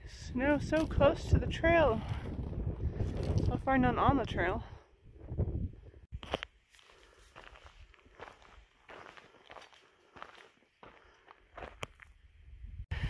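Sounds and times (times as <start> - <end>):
footsteps on gravel: 6.1 - 12.2.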